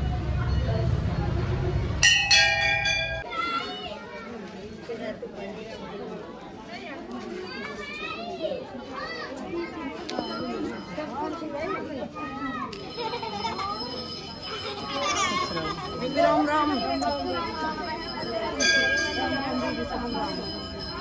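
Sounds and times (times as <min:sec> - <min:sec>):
women and children chattering: 0:00.0 - 0:21.0
temple bell ringing: 0:00.2 - 0:03.6, 0:09.8 - 0:21.0.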